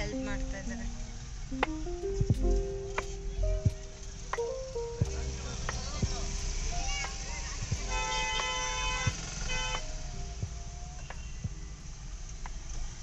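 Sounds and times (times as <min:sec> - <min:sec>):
low traffic rumble: 0:00.0 - 0:13.0
vehicle horns honking: 0:07.5 - 0:10.2.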